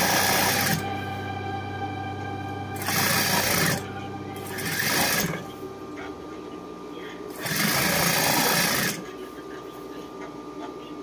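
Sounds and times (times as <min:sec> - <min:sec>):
sewing machine stitching: 0:00.0 - 0:00.8, 0:02.8 - 0:03.8, 0:04.4 - 0:05.4, 0:07.3 - 0:09.0.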